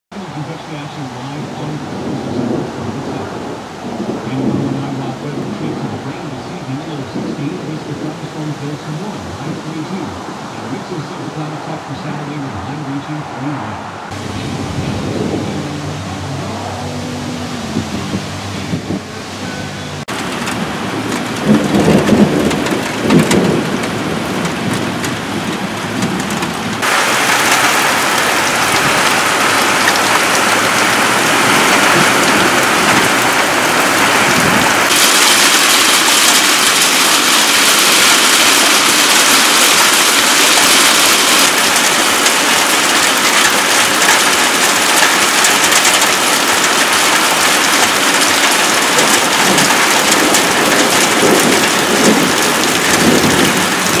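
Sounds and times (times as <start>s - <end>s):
heavy rain on glass table: 0.2s - 54.0s.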